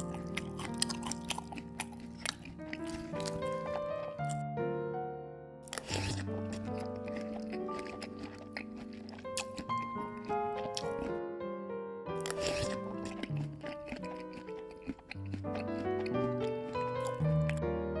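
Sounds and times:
crunchy chewing sound effects: 0.0 - 4.4, 5.6 - 11.2, 12.2 - 17.6
background music: 0.0 - 18.0.

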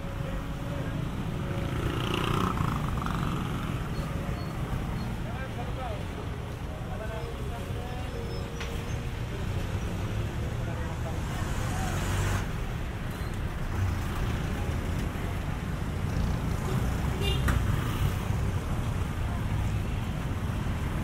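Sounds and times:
scooters and vehicles passing: 0.0 - 21.0.

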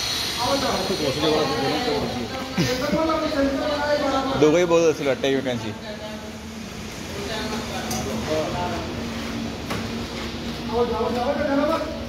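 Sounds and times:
men talking: 0.4 - 5.8, 8.0 - 9.5, 10.5 - 12.0.

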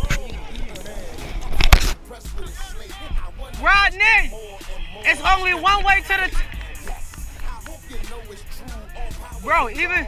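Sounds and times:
background music: 0.0 - 10.0
person speaking: 3.6 - 4.3, 5.0 - 6.5, 9.4 - 10.0.

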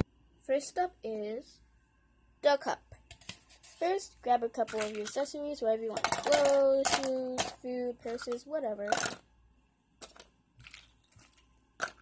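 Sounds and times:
plastic accessories rustling: 4.6 - 9.2, 10.0 - 12.0
plastic accessories clicking: 5.9 - 9.2.

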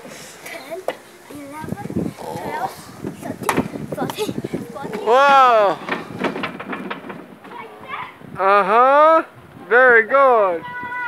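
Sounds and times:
faint children's voices: 0.0 - 6.4, 7.3 - 8.6, 10.4 - 11.0
knocks on climbing structure: 4.9 - 7.6.

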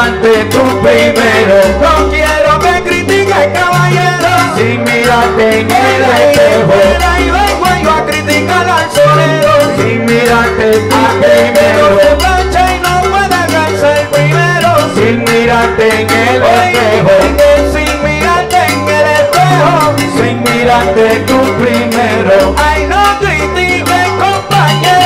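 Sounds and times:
salsa band playing: 0.0 - 25.0.

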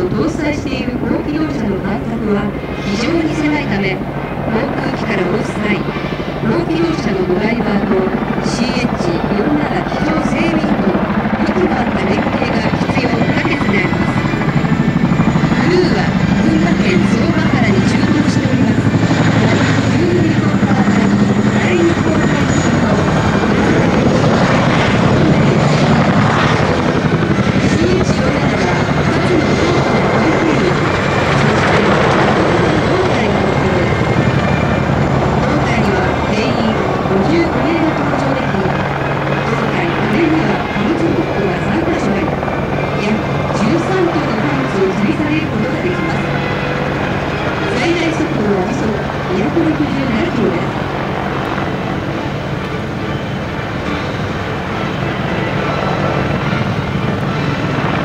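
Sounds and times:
helicopter rotors and turbines: 0.0 - 58.0.

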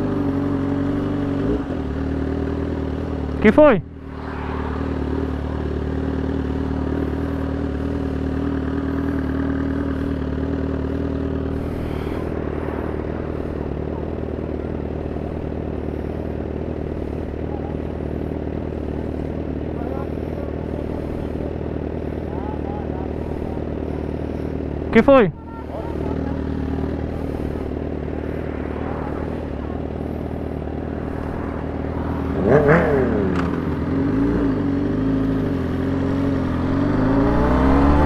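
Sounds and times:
motorcycle engine running: 0.0 - 38.0.

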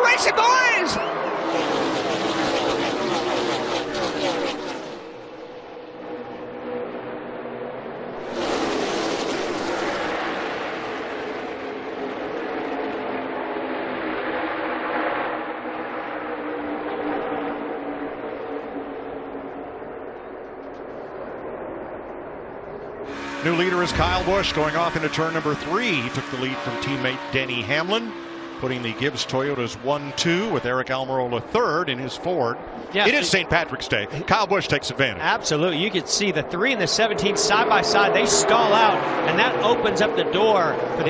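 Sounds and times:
race cars passing at full throttle: 0.0 - 41.0.

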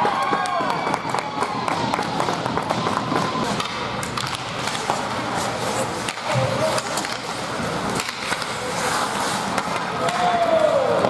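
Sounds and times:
skates scraping ice: 0.0 - 11.0
sticks clacking on puck: 0.0 - 11.0.

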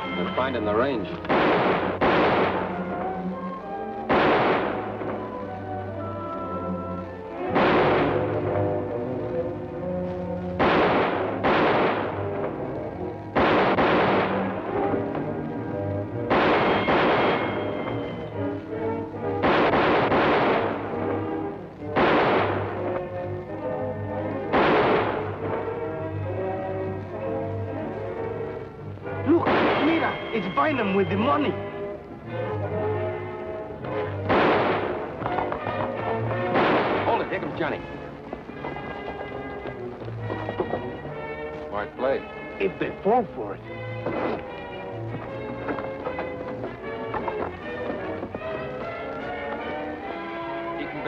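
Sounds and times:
dramatic background music: 0.0 - 51.0
echoing gunshots: 1.2 - 3.1, 4.1 - 5.3, 7.4 - 8.6, 10.6 - 12.6, 13.3 - 15.0, 16.3 - 18.2, 19.4 - 21.2, 21.9 - 23.0, 24.4 - 26.0, 29.4 - 30.3, 34.1 - 37.8.

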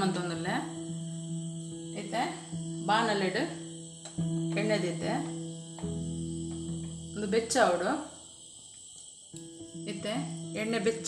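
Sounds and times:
crickets chirring: 0.0 - 11.0
low background hiss: 0.0 - 11.0.

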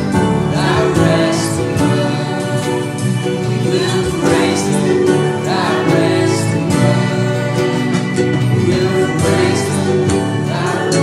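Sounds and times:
acoustic guitar: 0.0 - 11.0
bass guitar: 0.0 - 11.0
drums: 0.0 - 11.0
keyboard: 0.0 - 11.0
people singing: 0.0 - 11.0.

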